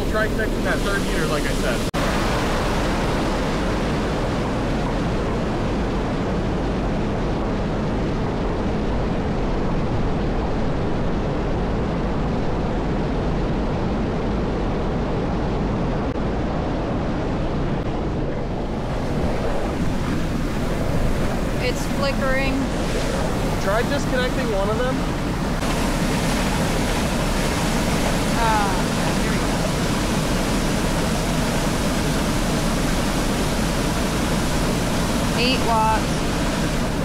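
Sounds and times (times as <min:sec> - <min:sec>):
water rushing over stone spillway: 0:25.6 - 0:37.0.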